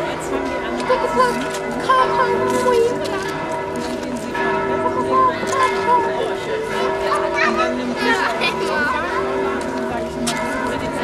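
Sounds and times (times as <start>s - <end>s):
church bells ringing: 0.0s - 11.0s.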